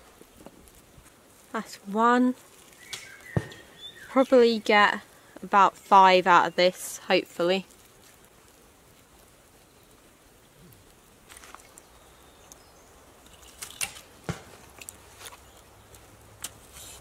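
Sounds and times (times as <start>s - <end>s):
firewood knocking and clattering: 2.5s - 3.8s, 13.2s - 15.1s.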